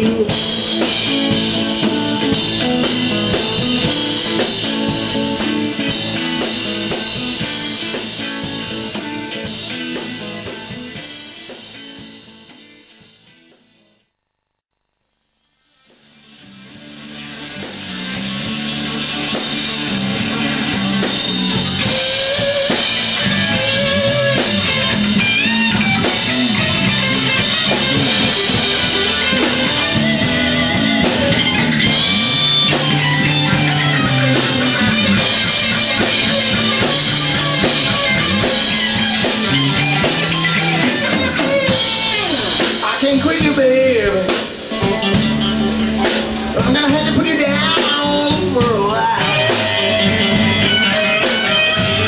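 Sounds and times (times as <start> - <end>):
electric guitar lead with bends: 0.0 - 12.8, 16.2 - 52.0
bass guitar: 0.0 - 14.0, 15.8 - 52.0
drum kit: 0.0 - 14.0, 15.6 - 52.0.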